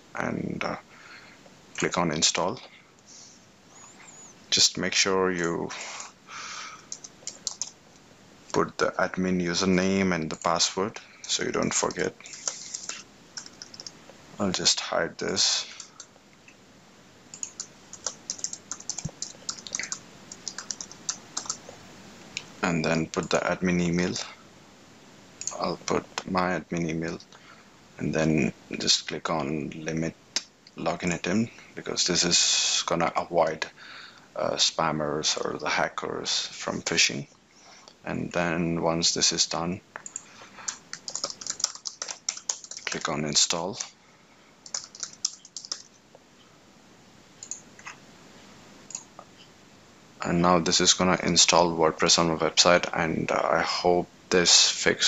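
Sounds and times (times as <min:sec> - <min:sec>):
computer keyboard keystrokes: 0:06.9 - 0:07.8, 0:12.3 - 0:14.0, 0:17.3 - 0:21.7, 0:40.0 - 0:43.0, 0:44.6 - 0:45.9.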